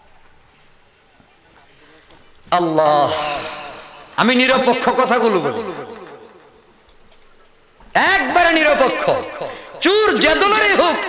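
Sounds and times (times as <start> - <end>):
man speaking through a microphone: 2.5 - 6.4, 7.9 - 11.0.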